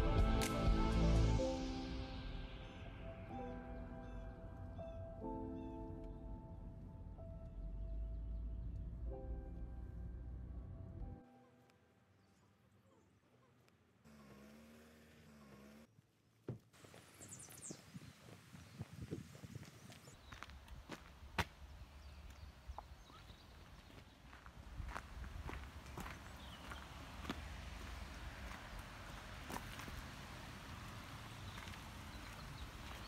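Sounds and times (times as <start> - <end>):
footsteps on stony path: 16.5 - 33.0
wind rumble on microphone: 17.4 - 20.9.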